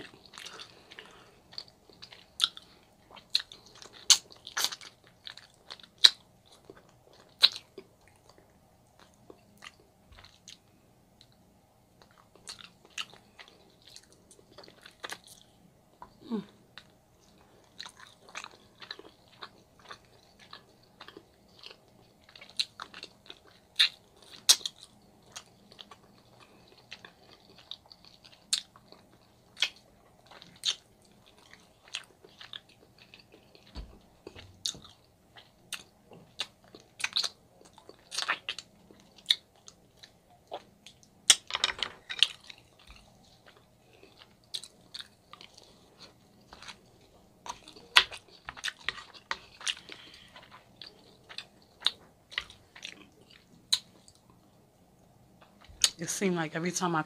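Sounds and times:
close chewing of meat: 0:00.0 - 0:11.3, 0:12.0 - 0:54.7.

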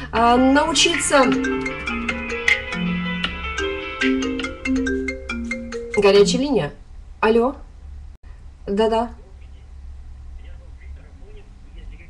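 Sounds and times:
mobile phone ringtone: 0:00.6 - 0:06.4.

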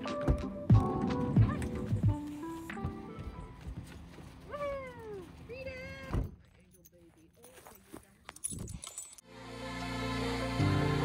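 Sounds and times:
soft background music: 0:00.0 - 0:05.6.

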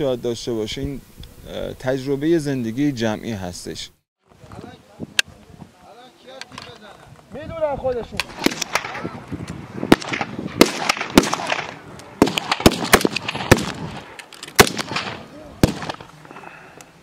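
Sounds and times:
rifle shots: 0:08.2 - 0:09.0, 0:09.9 - 0:16.1.

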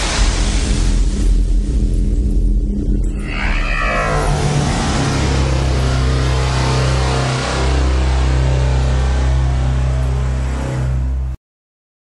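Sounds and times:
deep bass drone: 0:00.0 - 0:11.4.

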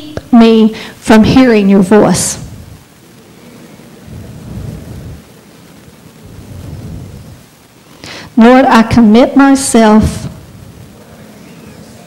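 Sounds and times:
congregation murmuring a prayer: 0:10.4 - 0:12.0.

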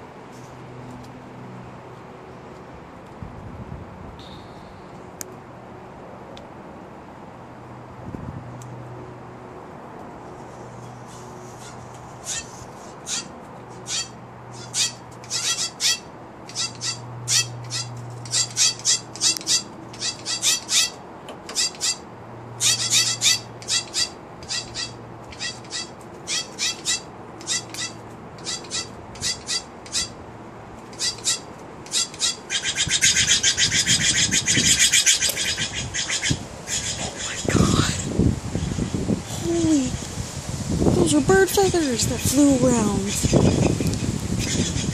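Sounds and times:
jays fighting harsh noise: 0:10.3 - 0:40.8, 0:41.5 - 0:44.9
jays giving harsh rasping calls: 0:10.9 - 0:39.0, 0:41.7 - 0:44.9.

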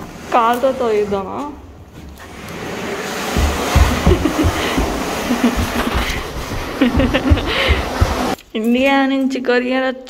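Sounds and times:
cardboard box scraping on carpet: 0:00.0 - 0:08.4
low thumps: 0:00.7 - 0:08.4.

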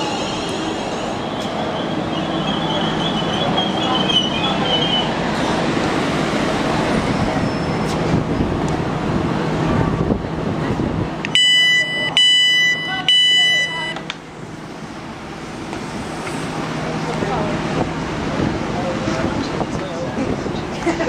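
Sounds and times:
electric train rumbling: 0:00.0 - 0:21.0
door alarm beeps: 0:11.3 - 0:14.0.

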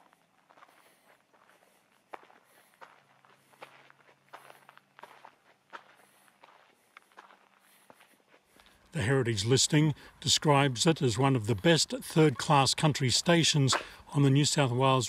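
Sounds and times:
footsteps on asphalt: 0:00.0 - 0:09.0.

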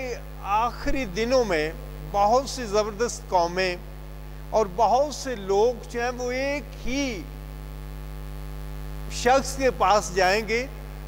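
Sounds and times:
man speaking: 0:00.0 - 0:03.8, 0:04.5 - 0:07.3, 0:09.1 - 0:10.9
electrical mains hum: 0:00.0 - 0:11.0.

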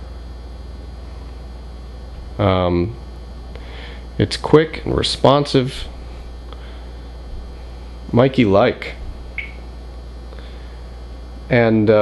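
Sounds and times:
low background hum: 0:00.0 - 0:12.0
faint high blip: 0:09.4 - 0:09.6.

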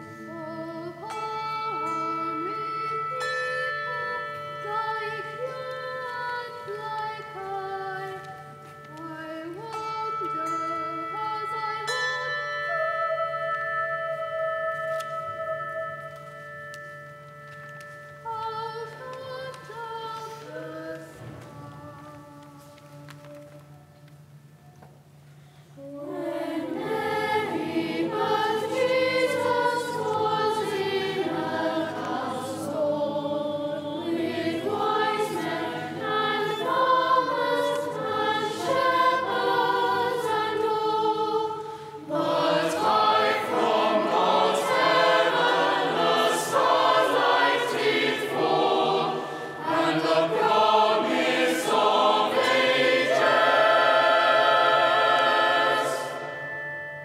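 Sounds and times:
choir singing a carol: 0:00.0 - 0:13.5, 0:18.2 - 0:23.7, 0:25.8 - 0:57.0.

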